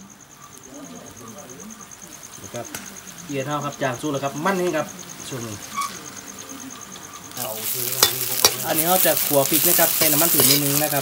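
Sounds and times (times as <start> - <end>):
insect chirping: 0.0 - 11.0
chilies sizzling in oil: 0.3 - 11.0.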